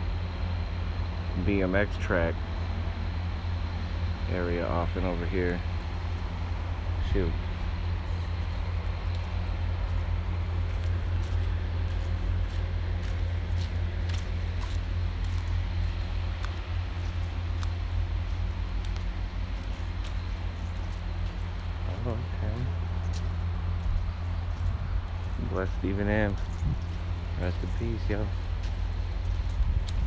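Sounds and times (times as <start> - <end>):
steady low rumble: 0.0 - 30.0
footsteps on dry dirt trail: 5.0 - 30.0.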